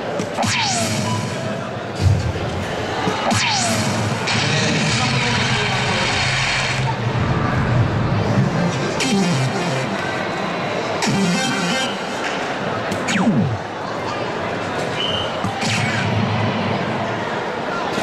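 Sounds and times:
chatter in a large hall: 0:00.0 - 0:18.0.

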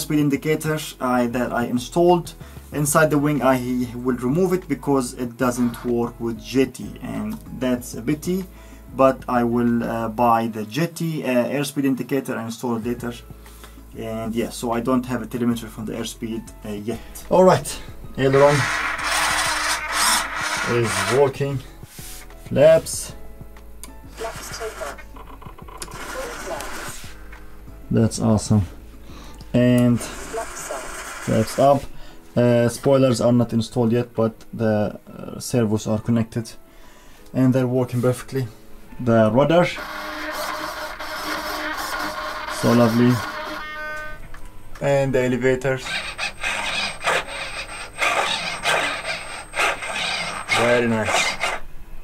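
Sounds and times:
background music: 0:00.0 - 0:52.0
servos electric motor buzz: 0:18.3 - 0:21.4, 0:24.1 - 0:25.1, 0:25.7 - 0:27.2, 0:29.9 - 0:31.8, 0:39.8 - 0:44.2, 0:45.8 - 0:51.6.

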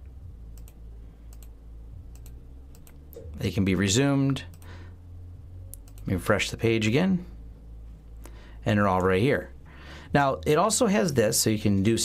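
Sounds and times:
low steady hum: 0:00.0 - 0:12.0
computer mouse clicks: 0:00.5 - 0:03.3, 0:04.5 - 0:04.7, 0:05.7 - 0:06.1.

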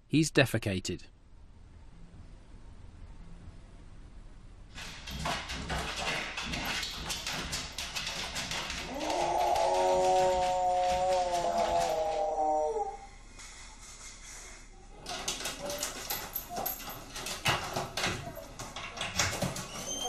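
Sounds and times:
dog scratching at door: 0:04.7 - 0:12.2, 0:15.0 - 0:20.0
dog howling: 0:08.8 - 0:13.2.

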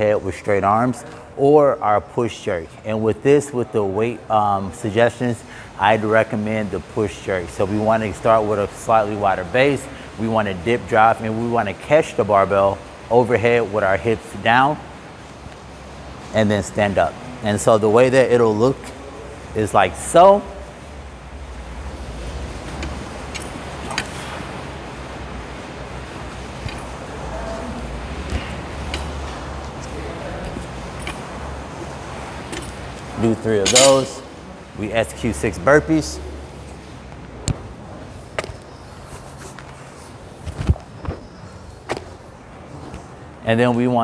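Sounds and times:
low room rumble: 0:00.0 - 0:39.2
barbell clinking: 0:22.7 - 0:24.4, 0:26.5 - 0:34.4.

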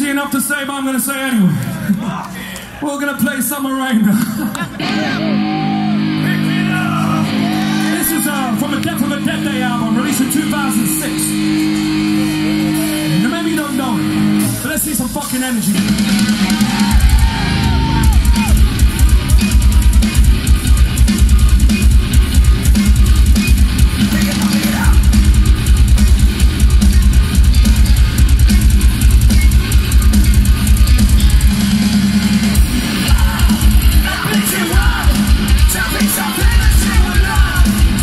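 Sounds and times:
heavily distorted guitars: 0:02.6 - 0:38.0
metal band playing live: 0:04.6 - 0:38.0.

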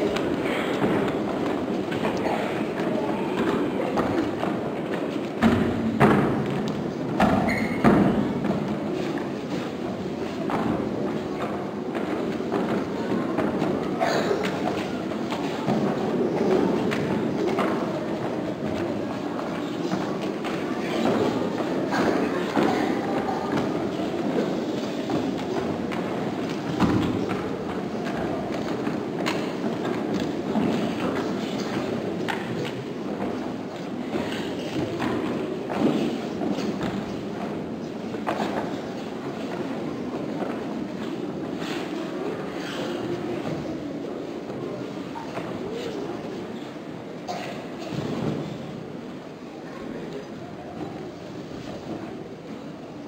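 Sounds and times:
background hubbub: 0:00.0 - 0:53.0.

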